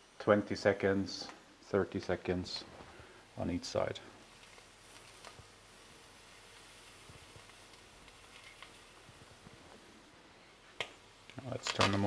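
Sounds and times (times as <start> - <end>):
food sizzling in a pan: 3.0 - 12.0.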